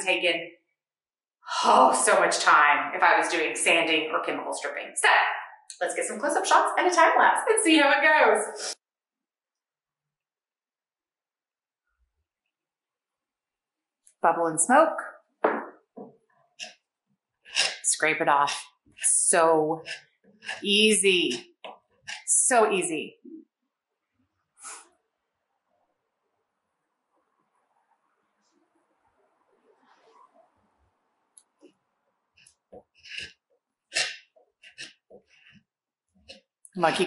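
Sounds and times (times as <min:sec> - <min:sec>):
woman speaking: 0:00.0 - 0:00.4, 0:01.5 - 0:08.8, 0:14.2 - 0:15.2, 0:17.8 - 0:19.9, 0:20.6 - 0:21.4, 0:22.2 - 0:23.3, 0:36.7 - 0:37.0.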